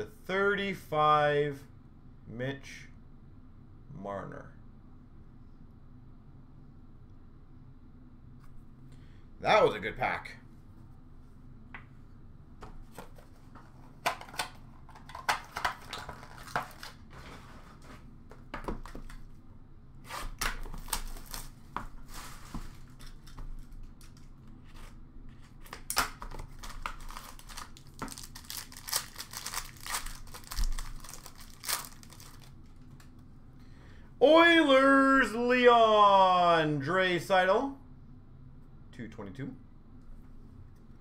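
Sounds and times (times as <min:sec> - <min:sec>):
cards and boxes clicking and tapping: 0:12.6 - 0:17.0, 0:18.3 - 0:19.2, 0:22.5 - 0:32.5
card packs crinkling and tearing: 0:13.6 - 0:17.1, 0:20.1 - 0:24.2, 0:25.4 - 0:33.0.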